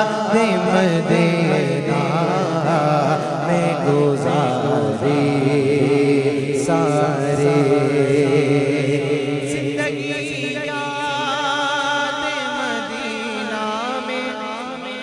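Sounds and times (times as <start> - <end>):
wavering wordless vocal melody: 0.0 - 15.0.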